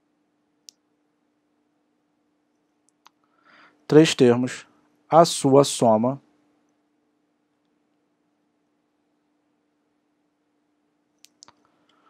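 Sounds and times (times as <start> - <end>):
faint steady hum: 0.0 - 12.0
man's voice: 3.9 - 6.2
small sharp clicks: 11.2 - 12.0.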